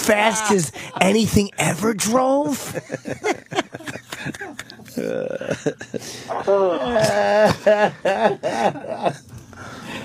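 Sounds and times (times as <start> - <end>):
man laughing: 0.0 - 9.3.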